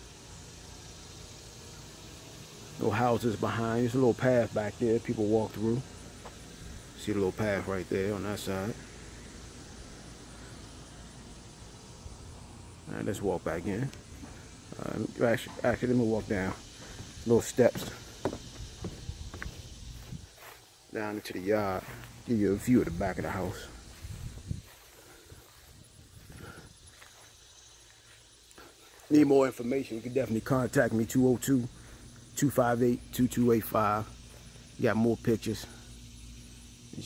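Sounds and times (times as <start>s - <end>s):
low outdoor rumble: 0.0s - 29.0s
light hiss: 0.0s - 37.0s
footsteps on grass: 13.7s - 29.7s.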